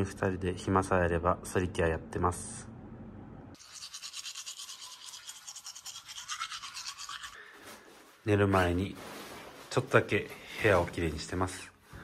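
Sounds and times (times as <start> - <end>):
toothbrush scrubbing teeth: 3.6 - 7.5.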